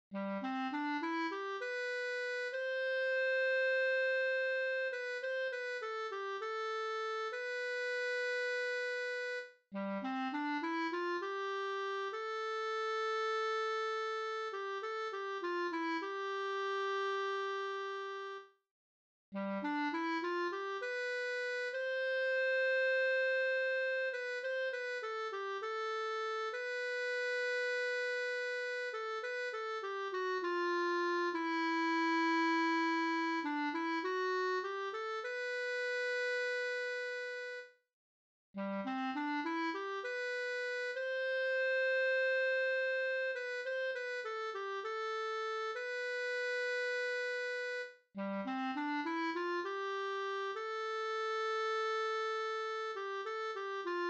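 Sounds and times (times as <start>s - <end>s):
clarinet holding long note: 0.1s - 18.5s, 19.4s - 37.7s, 38.6s - 54.0s.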